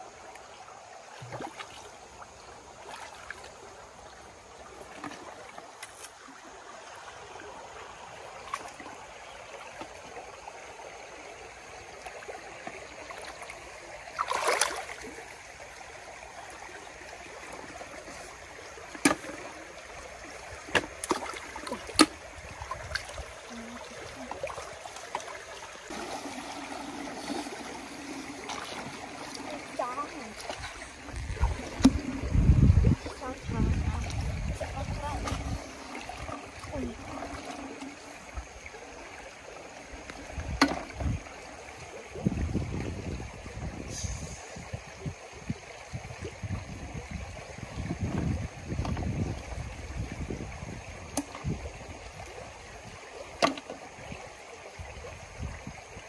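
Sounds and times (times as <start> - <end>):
stream water trickling: 0.0 - 56.0.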